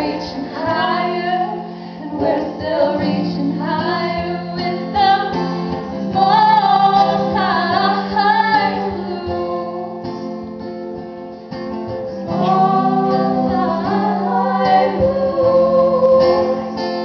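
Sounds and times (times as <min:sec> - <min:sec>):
women singing blues: 0:00.0 - 0:10.4, 0:12.2 - 0:17.0
strummed acoustic guitars: 0:00.0 - 0:17.0.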